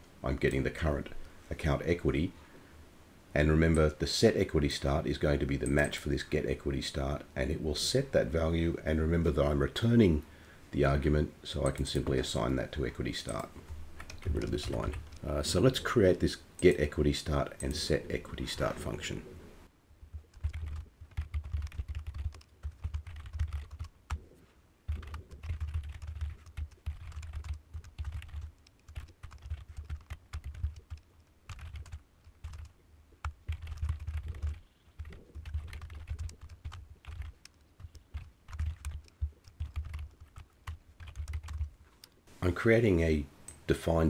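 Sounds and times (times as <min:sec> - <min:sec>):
keyboard keystrokes clicking: 0:24.9 - 0:41.7.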